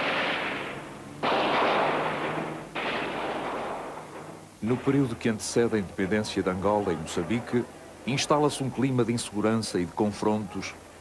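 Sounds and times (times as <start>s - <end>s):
gunfire bursts: 0.0s - 5.1s.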